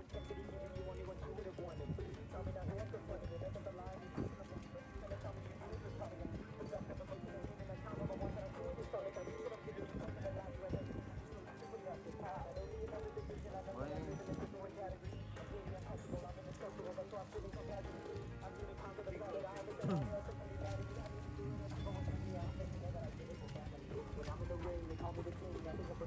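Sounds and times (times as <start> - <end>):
music: 0.0 - 26.0
people's voices: 0.0 - 26.0
running footsteps on pavement: 0.0 - 26.0.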